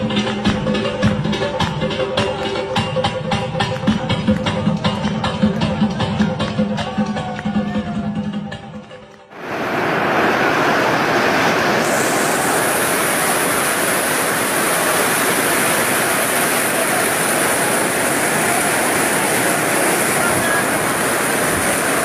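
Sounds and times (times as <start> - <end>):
heavy rain on tent roof: 9.3 - 22.0.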